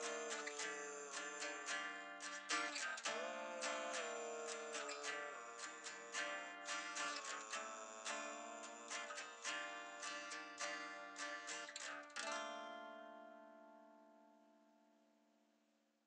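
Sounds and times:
guitar chord ringing: 0:00.0 - 0:14.9
guitar picked notes: 0:00.0 - 0:15.0.

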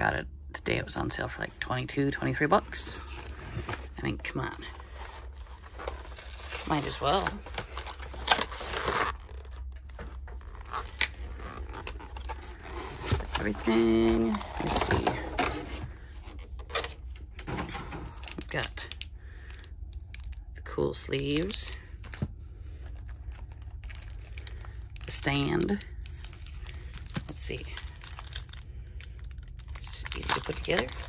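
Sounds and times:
low steady hum: 0:00.0 - 0:31.0.

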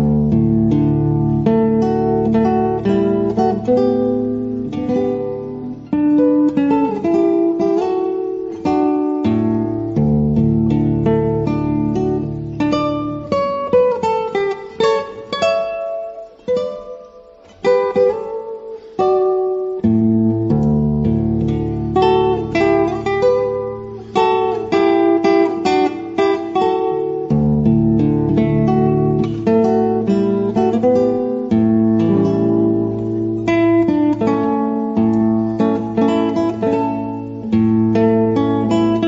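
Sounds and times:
acoustic guitar melody: 0:00.0 - 0:39.0.

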